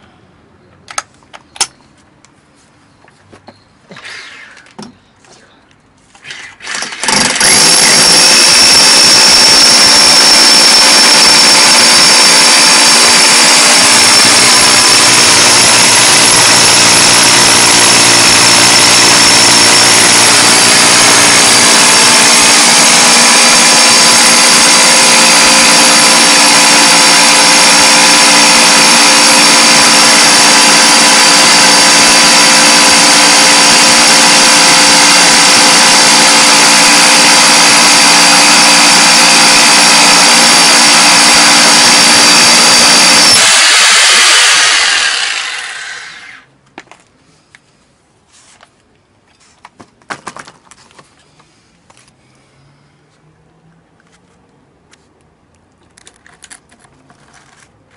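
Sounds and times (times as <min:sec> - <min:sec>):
rotary hammer drilling into concrete: 0:06.2 - 0:46.5.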